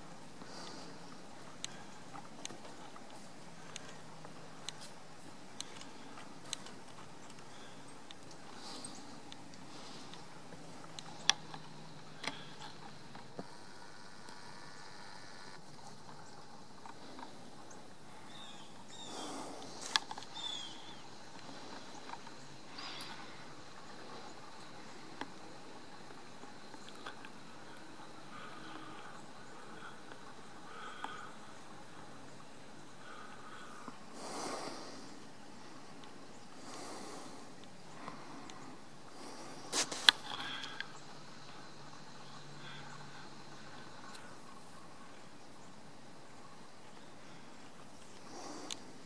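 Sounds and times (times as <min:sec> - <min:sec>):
steady low hiss: 0:00.0 - 0:49.0
falling bird chirps: 0:20.2 - 0:21.1.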